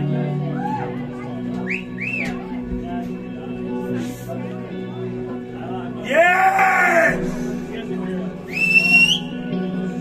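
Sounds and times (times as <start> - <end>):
rising and falling whistles: 8.5 - 9.3.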